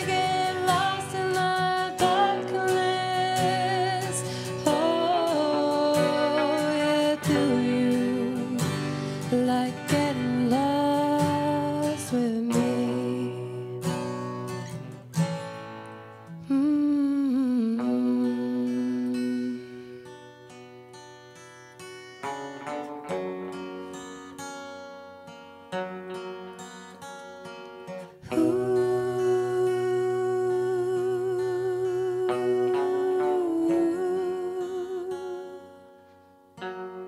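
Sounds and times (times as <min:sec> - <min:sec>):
woman singing long note: 0:00.0 - 0:08.6, 0:16.5 - 0:19.8, 0:28.2 - 0:35.6
acoustic guitar: 0:00.0 - 0:37.0
person humming: 0:04.0 - 0:08.7, 0:16.4 - 0:19.9, 0:28.2 - 0:35.6.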